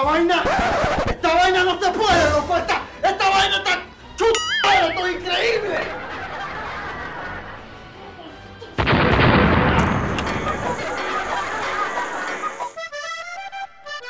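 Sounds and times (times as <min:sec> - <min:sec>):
accordion music: 0:03.8 - 0:06.4, 0:10.4 - 0:14.0
loud crash or blast: 0:08.8 - 0:11.8.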